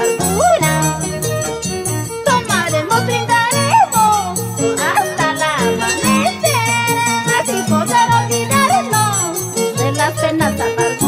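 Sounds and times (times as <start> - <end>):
harp-led folk ensemble: 0.0 - 11.0
high sliding melody: 0.0 - 11.0.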